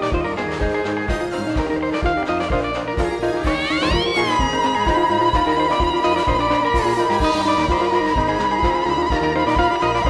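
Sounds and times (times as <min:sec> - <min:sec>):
instrumental praise band music: 0:00.0 - 0:10.0
steady drum beat: 0:00.1 - 0:10.0.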